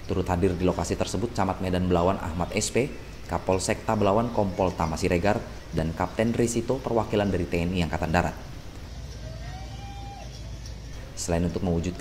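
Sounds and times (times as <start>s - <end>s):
vehicle rumble: 0.0s - 12.0s.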